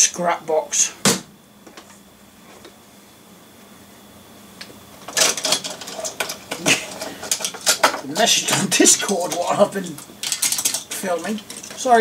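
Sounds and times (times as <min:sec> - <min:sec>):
model cars clicking and rattling: 0:05.1 - 0:12.0.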